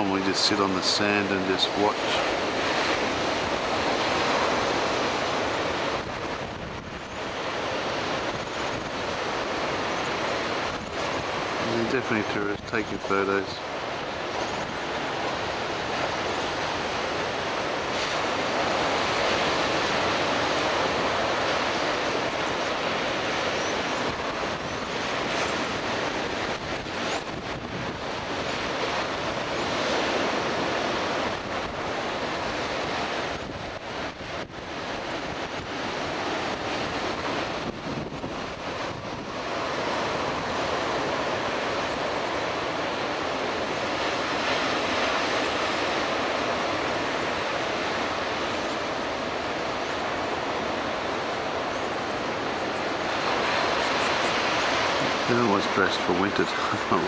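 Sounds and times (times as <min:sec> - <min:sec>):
ocean waves breaking: 0:00.0 - 0:57.0.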